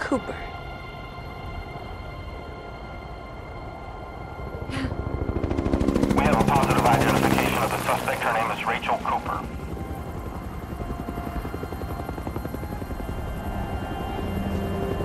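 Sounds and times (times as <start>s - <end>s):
helicopter rotor chopping: 5.0s - 15.0s.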